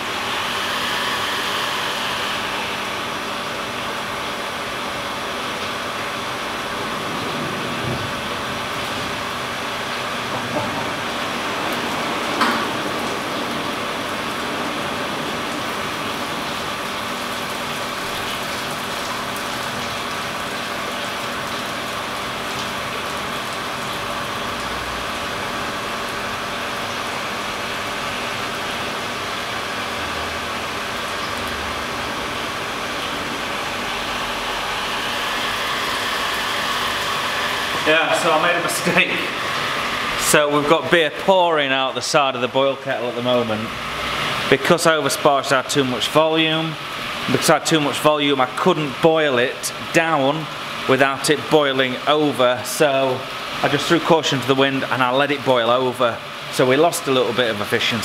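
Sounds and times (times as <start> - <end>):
kettle rolling boil rushing: 0.0 - 58.0
steady hum: 0.0 - 58.0.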